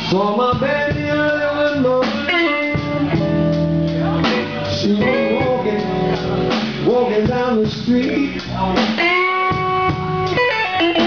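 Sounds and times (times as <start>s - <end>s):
bass: 0.0s - 11.0s
drums: 0.0s - 11.0s
electric guitar bending notes: 1.0s - 11.0s.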